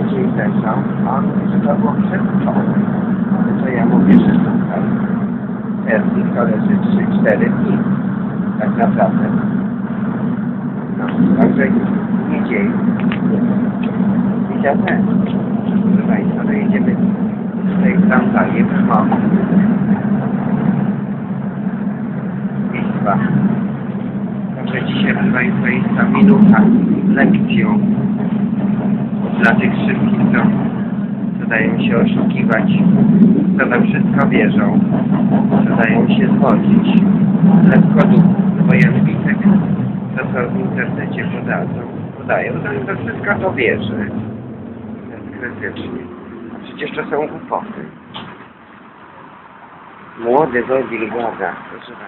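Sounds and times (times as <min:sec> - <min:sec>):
bus interior drone: 0:00.0 - 0:52.0.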